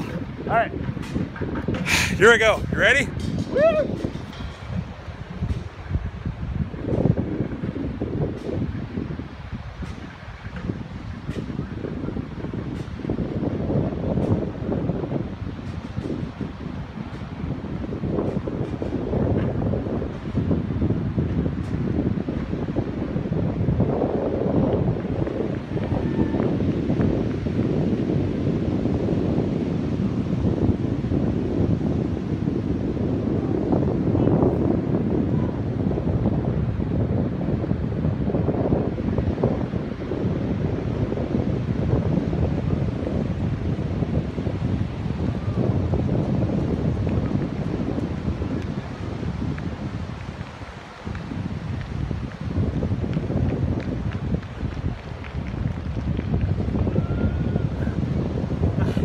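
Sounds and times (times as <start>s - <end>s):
ocean surf washing: 0.0s - 59.0s
wind buffeting microphone: 0.0s - 59.0s.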